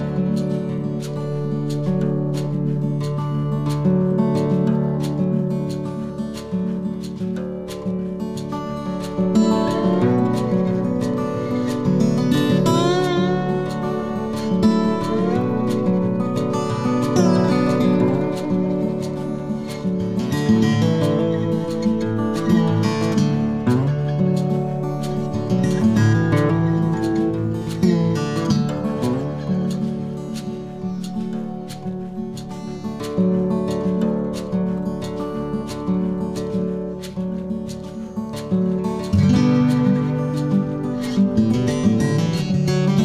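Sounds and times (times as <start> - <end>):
acoustic guitar music: 0.0 - 43.0.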